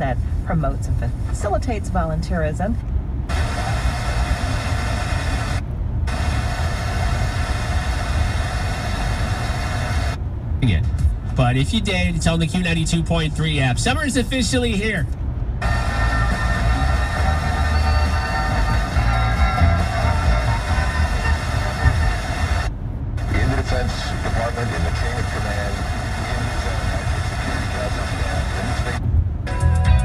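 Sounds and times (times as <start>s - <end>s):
car cabin rumble: 0.0s - 30.0s
radio static: 3.3s - 14.9s, 15.6s - 29.0s
faint radio music: 15.6s - 30.0s
faint radio speech: 23.2s - 29.0s.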